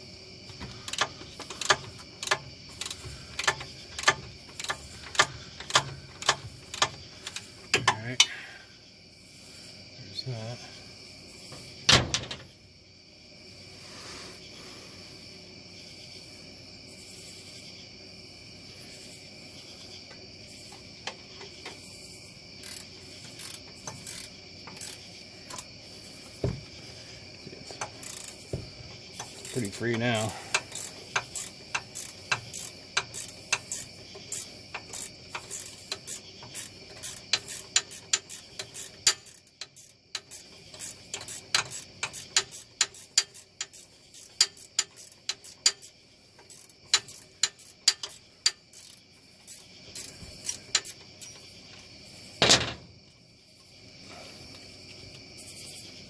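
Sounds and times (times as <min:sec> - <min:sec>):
ratchet wrench clicking: 0:00.8 - 0:08.4, 0:22.6 - 0:25.7, 0:27.7 - 0:51.4
heavy knocks: 0:26.4 - 0:26.8, 0:28.5 - 0:28.9.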